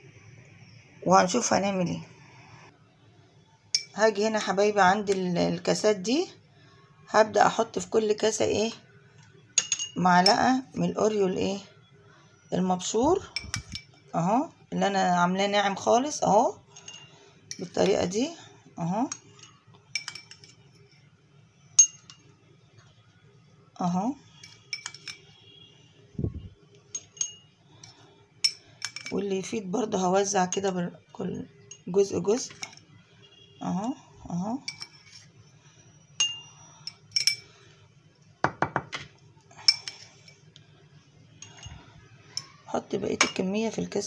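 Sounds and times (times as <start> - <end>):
metal spoon clinking glass: 3.7 - 4.0, 9.6 - 10.5, 13.3 - 14.0, 16.7 - 17.8, 19.1 - 21.1, 21.8 - 22.3, 24.3 - 25.4, 26.9 - 29.2, 31.6 - 32.9, 34.6 - 35.2, 36.1 - 37.6, 39.6 - 40.4, 41.4 - 42.6, 43.2 - 43.5.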